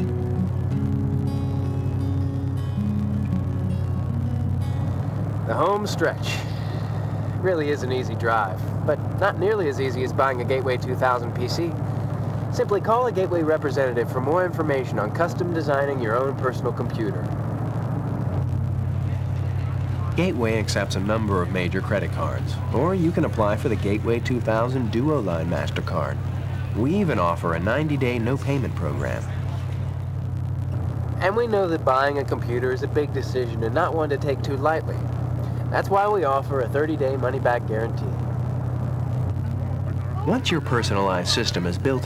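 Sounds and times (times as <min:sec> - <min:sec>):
car engine and road drone: 0:00.0 - 0:42.0
vehicle rumble: 0:00.0 - 0:42.0.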